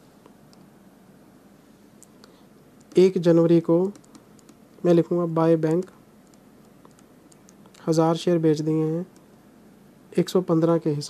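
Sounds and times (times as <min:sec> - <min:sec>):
man speaking: 0:02.9 - 0:04.0, 0:04.8 - 0:06.0, 0:07.8 - 0:09.2, 0:10.1 - 0:11.0
stylus tapping on pen tablet: 0:03.8 - 0:04.6.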